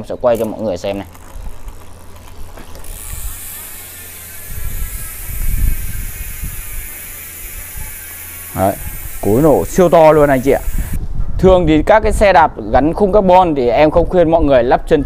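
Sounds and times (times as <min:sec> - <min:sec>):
bicycle freehub ratcheting: 0:00.0 - 0:11.0.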